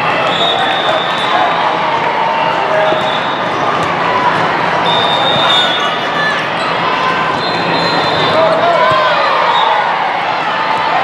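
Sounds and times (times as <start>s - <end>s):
many voices chattering and calling: 0.0s - 11.0s.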